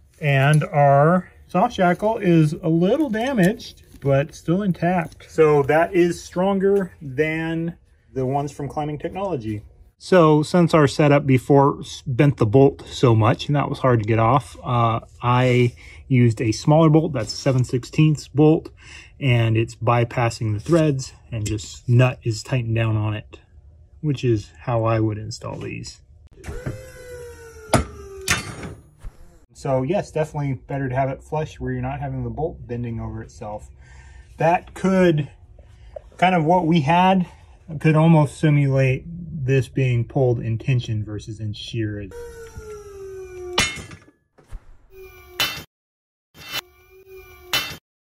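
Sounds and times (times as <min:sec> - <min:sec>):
motor whining under load: 0:26.4 - 0:29.4.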